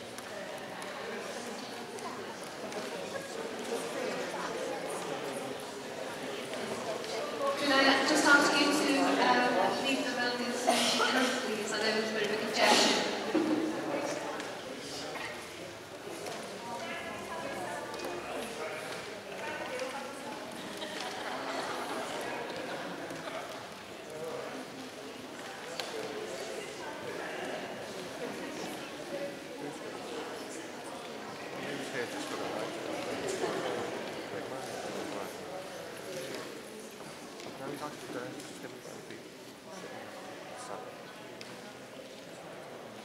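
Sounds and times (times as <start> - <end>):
indistinct chatter: 0.0 - 43.0.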